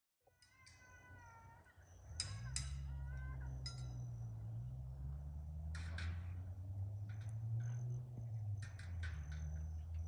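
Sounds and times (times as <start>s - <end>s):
high-pitched animal calls: 0.3s - 4.4s.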